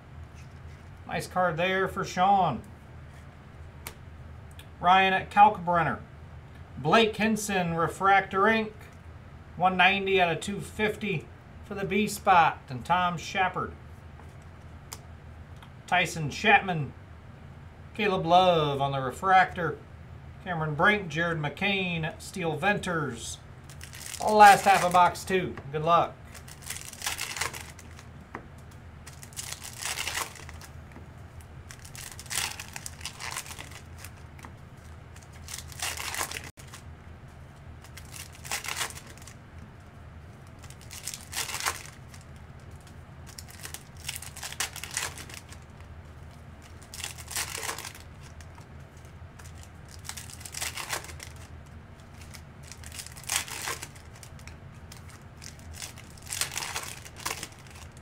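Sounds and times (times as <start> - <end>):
faint low hum: 0.0 - 58.0
foil wrappers crinkling and tearing: 23.6 - 25.3, 26.2 - 28.1, 29.0 - 30.7, 31.7 - 36.8, 37.8 - 39.4, 40.4 - 58.0.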